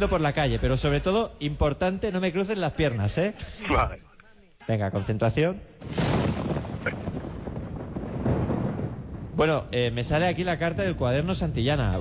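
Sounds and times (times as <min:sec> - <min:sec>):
rumbling explosion sound effect: 0:05.8 - 0:12.0.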